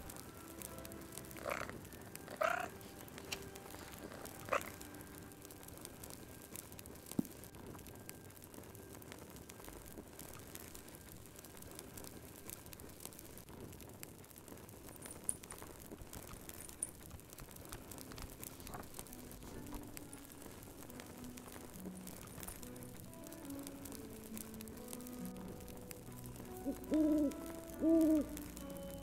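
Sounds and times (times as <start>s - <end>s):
wood fire crackling: 0.0s - 29.0s
frog croaking: 1.3s - 2.8s, 4.1s - 4.9s.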